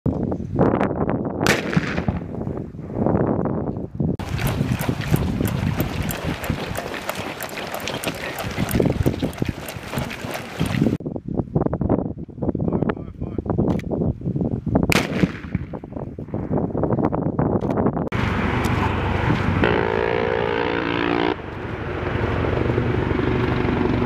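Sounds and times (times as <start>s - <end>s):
wind on microphone: 0.0s - 24.0s
gear rattling and running footfalls: 4.2s - 11.0s.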